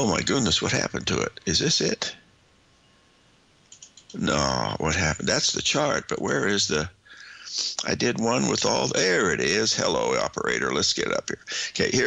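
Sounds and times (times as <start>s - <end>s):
computer mouse clicks: 3.6s - 4.2s.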